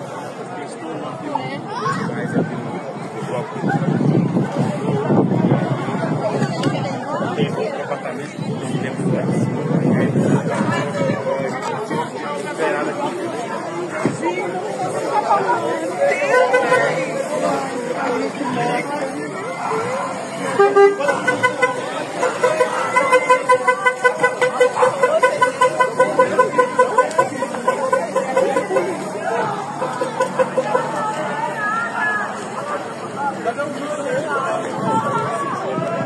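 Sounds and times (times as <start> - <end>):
chatter of voices: 0.0 - 36.0
vehicle horn pulsing: 16.2 - 17.5, 20.4 - 31.2.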